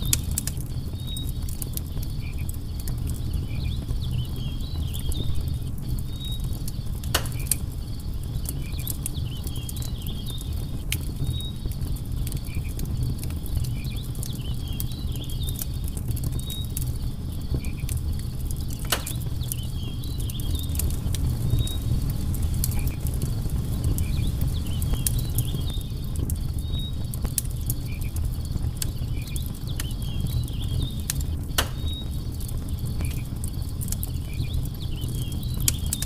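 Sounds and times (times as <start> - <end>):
campfire crackling and popping: 0.0 - 36.0
low rumble of flames: 0.0 - 36.0.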